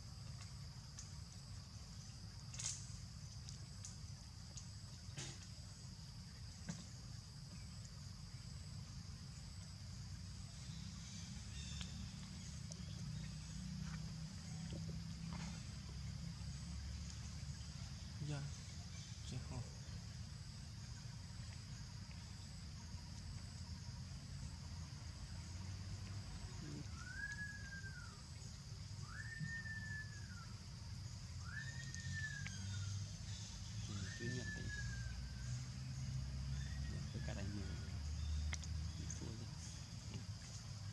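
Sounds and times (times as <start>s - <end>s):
insects droning: 0.0s - 40.9s.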